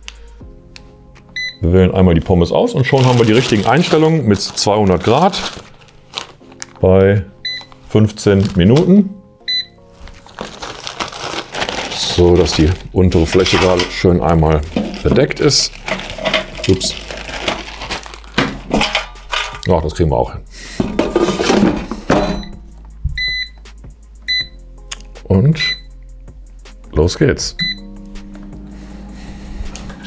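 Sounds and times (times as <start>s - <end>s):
plastic bag rustling: 2.3s - 7.0s, 7.6s - 9.1s, 9.9s - 19.6s, 20.8s - 22.2s
scissors cutting plastic bag: 2.8s - 6.8s, 10.0s - 19.0s
control panel beeps: 9.5s - 9.8s, 23.2s - 23.6s, 25.6s - 25.9s, 27.6s - 27.9s
handling noise: 10.0s - 19.6s, 20.8s - 22.8s.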